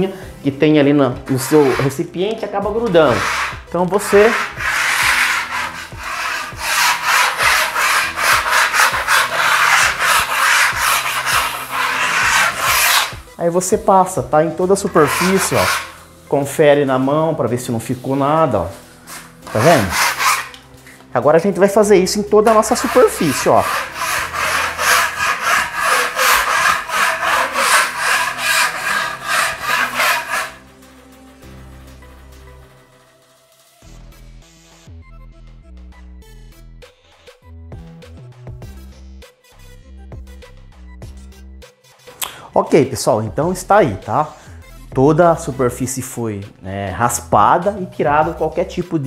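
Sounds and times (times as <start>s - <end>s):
putty knife scraping painted wall: 1.2s - 13.3s, 14.2s - 17.3s, 18.6s - 21.0s, 21.8s - 30.7s.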